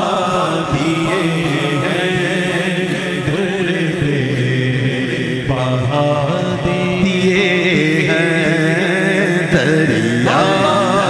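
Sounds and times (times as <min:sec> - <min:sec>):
low vocal drone: 0:00.0 - 0:11.0
unaccompanied chanted vocals: 0:00.0 - 0:11.0.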